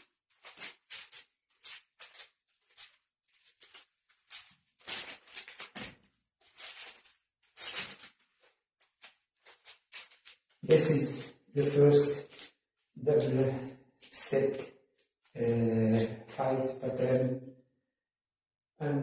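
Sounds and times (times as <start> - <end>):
bare feet on a mat: 0.5 - 10.6.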